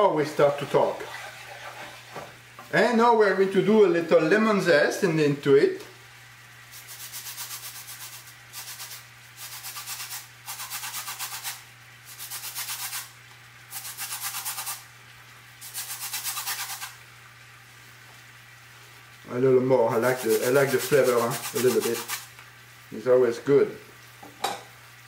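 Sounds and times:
lemon zested on metal grater: 6.7 - 14.8, 15.6 - 17.0, 19.9 - 22.3.

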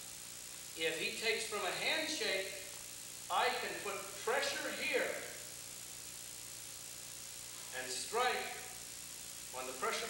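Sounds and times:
faint hum: 0.0 - 10.0
steady background hiss: 0.0 - 10.0.

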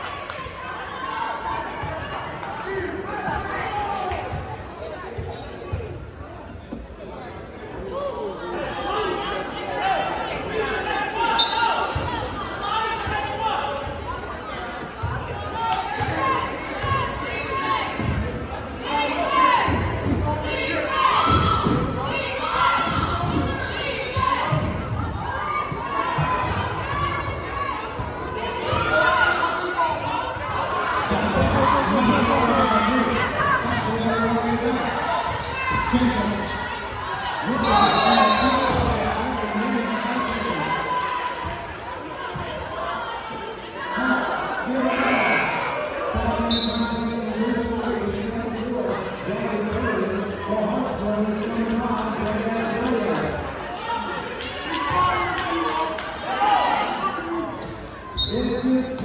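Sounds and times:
people talking and calling out: 0.0 - 59.0.

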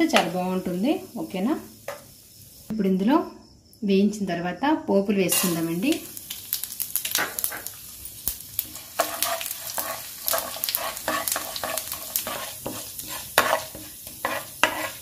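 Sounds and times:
seeds sizzling in hot oil: 0.0 - 2.7, 5.3 - 15.0
spatula scraping a pan: 8.7 - 15.0.

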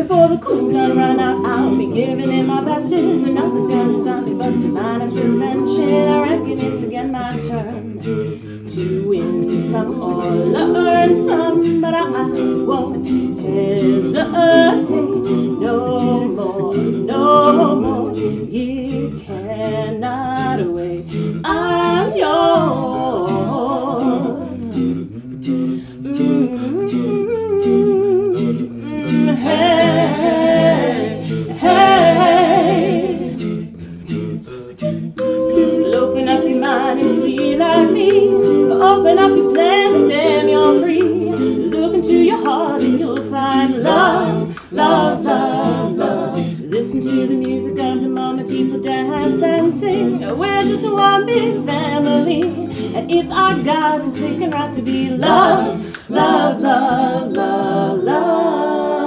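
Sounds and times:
a cappella group singing: 0.0 - 59.0
vocal percussion clicking beat: 0.0 - 59.0.

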